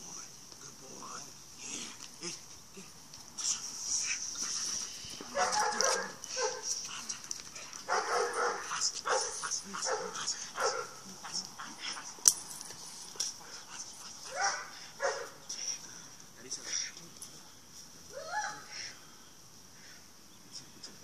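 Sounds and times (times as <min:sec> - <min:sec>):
dog barking: 0:05.3 - 0:06.7, 0:07.9 - 0:11.0, 0:14.3 - 0:15.4.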